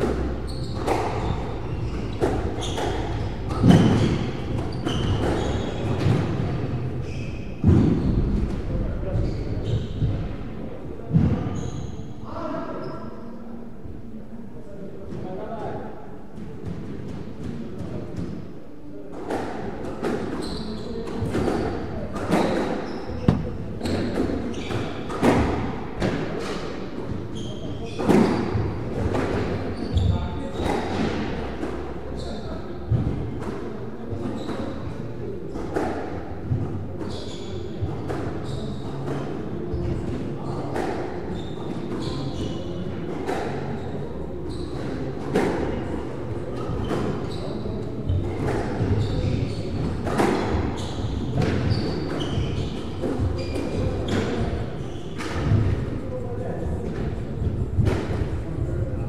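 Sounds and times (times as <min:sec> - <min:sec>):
shoes squeaking on court: 0:00.2 - 0:08.2, 0:20.2 - 0:25.6, 0:27.2 - 0:28.6, 0:29.7 - 0:31.5, 0:34.4 - 0:34.8, 0:37.0 - 0:39.1, 0:39.7 - 0:45.8, 0:46.6 - 0:55.7.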